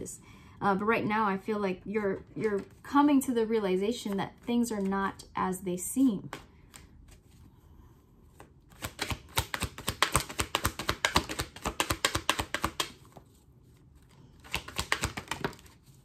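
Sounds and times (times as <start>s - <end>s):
cards shuffling: 8.3s - 16.0s.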